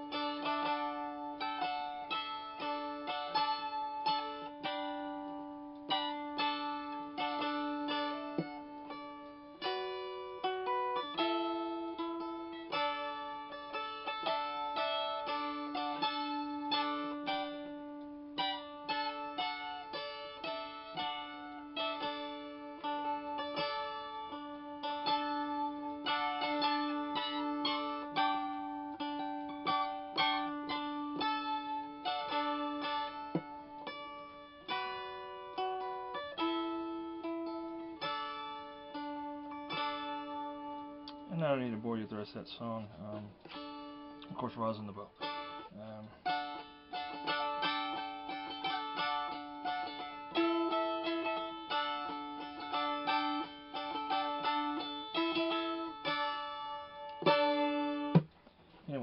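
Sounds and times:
lap dulcimer tune: 0.0s - 59.0s.

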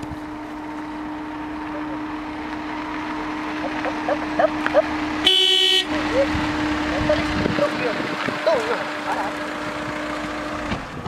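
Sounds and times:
car horn honking: 3.6s - 7.2s.

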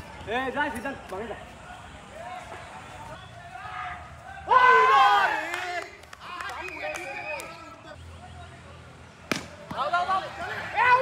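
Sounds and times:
people shouting: 3.4s - 7.3s, 9.7s - 11.0s
cricket bat striking ball: 9.2s - 9.8s.

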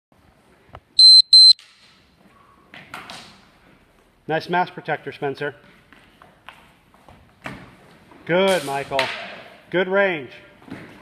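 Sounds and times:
short high electronic beeps: 1.0s - 1.6s.

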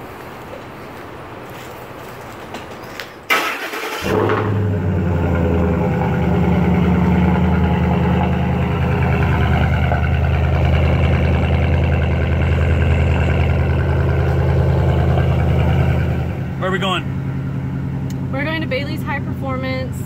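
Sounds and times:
truck engine idling: 0.0s - 20.0s
engine starter cranking: 3.3s - 4.6s.

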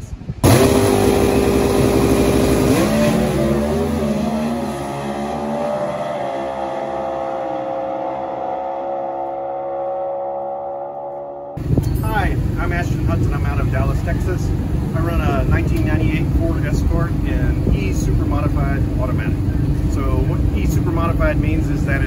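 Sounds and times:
race car engine accelerating: 0.4s - 11.6s
man talking: 12.0s - 22.0s.

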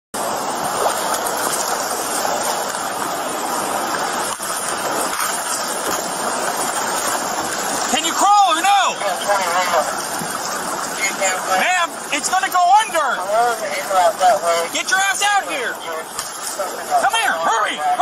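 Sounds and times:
floodwater rushing: 0.2s - 18.0s.

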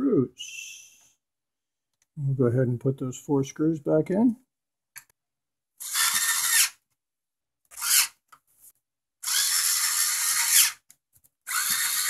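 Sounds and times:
electric screwdriver whirring: 5.8s - 6.8s, 7.7s - 8.2s, 9.2s - 10.9s, 11.5s - 12.0s.

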